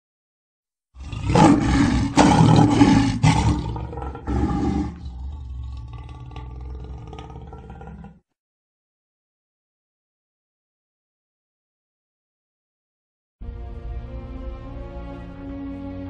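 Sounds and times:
lion roaring: 1.0s - 8.3s.

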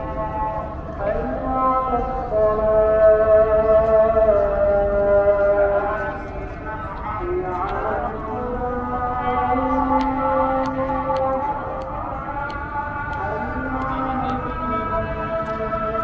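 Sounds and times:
call to prayer singing: 0.0s - 16.0s.

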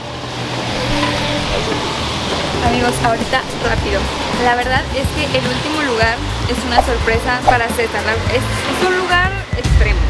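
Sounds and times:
vehicle engine running: 0.0s - 9.6s
street traffic noise: 0.0s - 10.0s.

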